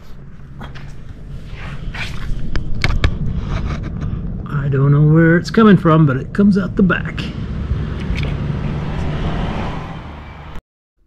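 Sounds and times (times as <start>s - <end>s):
steady low rumble: 0.0s - 9.8s.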